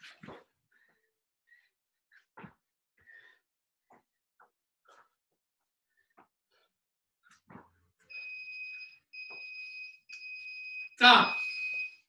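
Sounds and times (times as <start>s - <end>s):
electronic timer beeping: 8.1s - 12.0s.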